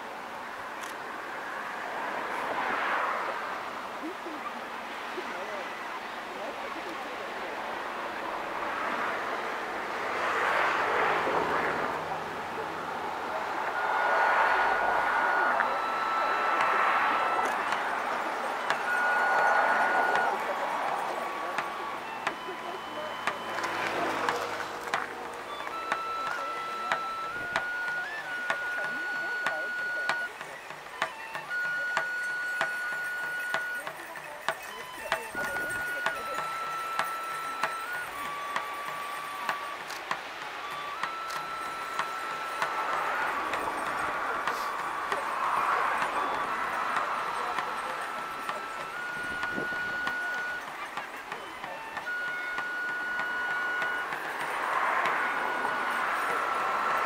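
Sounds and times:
bamboo flute long held notes: 0:05.3 - 0:57.0.

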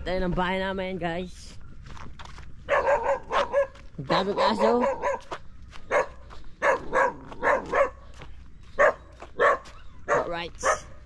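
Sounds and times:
dog barking: 0:02.6 - 0:08.1, 0:08.8 - 0:11.0.

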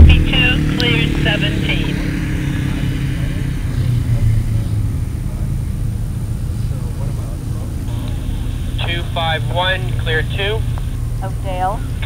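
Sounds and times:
low engine rumble: 0:00.0 - 0:12.0.

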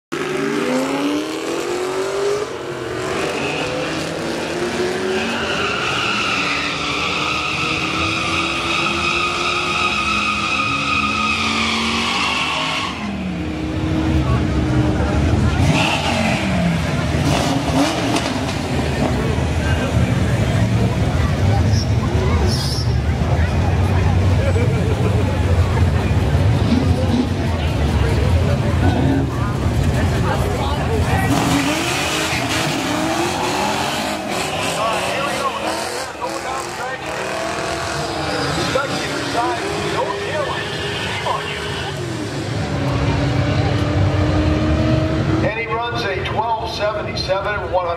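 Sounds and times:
drag car engine: 0:00.1 - 0:47.9
tyres spinning in a burnout: 0:00.2 - 0:13.5, 0:14.1 - 0:45.5.

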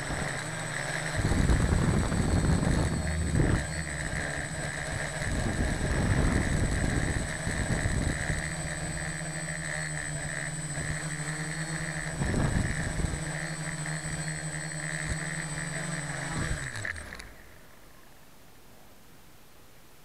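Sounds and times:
quadcopter propellers whirring: 0:00.0 - 0:18.2.

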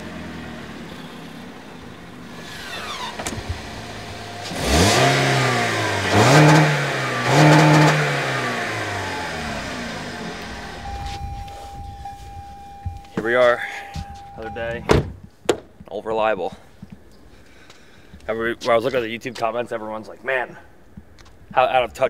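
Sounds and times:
car engine starting and revving: 0:00.0 - 0:13.1.

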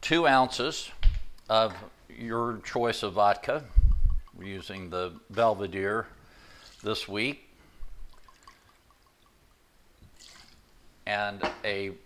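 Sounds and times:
liquid pouring from a bottle: 0:07.9 - 0:09.3, 0:10.1 - 0:10.6.

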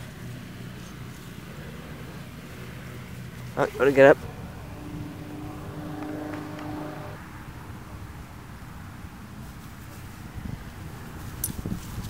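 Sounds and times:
distant engine humming: 0:00.0 - 0:09.2
low wind rumble: 0:00.0 - 0:12.0.

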